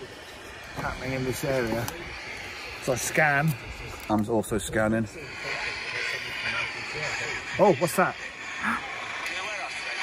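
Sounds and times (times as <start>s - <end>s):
radio scanner static hiss: 0.0s - 10.0s.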